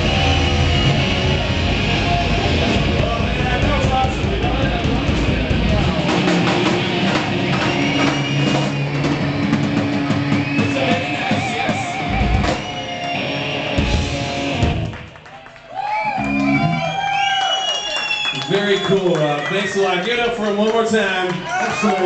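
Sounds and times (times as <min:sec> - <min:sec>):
heavy drum hits: 0:00.0 - 0:12.8
live rock band playing: 0:00.0 - 0:15.3, 0:16.0 - 0:17.3.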